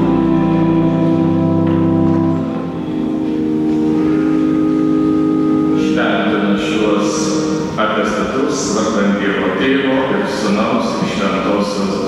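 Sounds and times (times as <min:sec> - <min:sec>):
church organ chords: 0:00.0 - 0:12.0.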